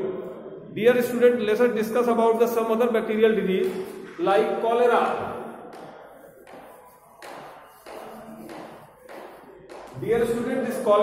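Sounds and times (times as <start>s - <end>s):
chalk scratching on blackboard: 3.3s - 11.0s
chalk tapping on board: 3.5s - 4.2s, 5.2s - 11.0s.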